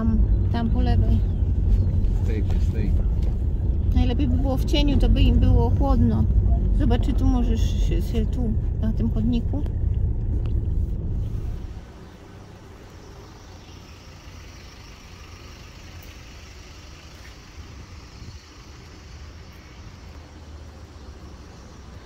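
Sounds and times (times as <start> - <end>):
engine rumble and road noise: 0.0 - 22.0
street traffic hum: 0.0 - 22.0.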